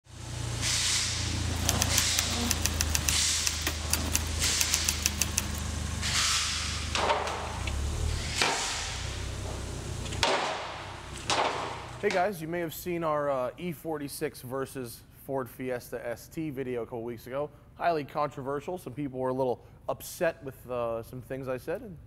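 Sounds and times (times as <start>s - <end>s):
car engine idling: 0.1s - 12.0s
sharp clicks: 1.6s - 5.6s.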